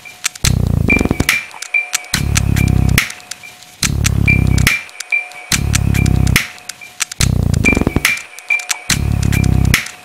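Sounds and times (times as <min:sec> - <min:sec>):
sharp clicks: 0:00.2 - 0:10.0.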